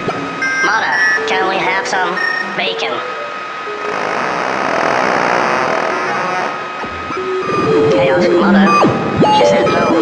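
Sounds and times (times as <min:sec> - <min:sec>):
steady high held tone: 0:00.2 - 0:10.0.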